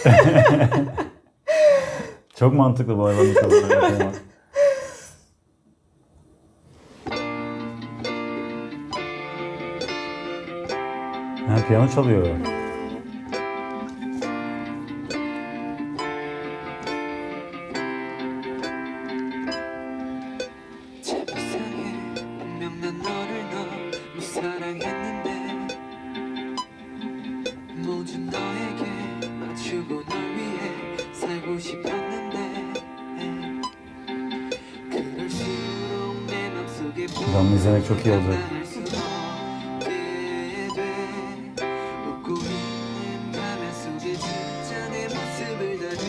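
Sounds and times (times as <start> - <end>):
electric keyboard piano chords: 7.1 - 46.0.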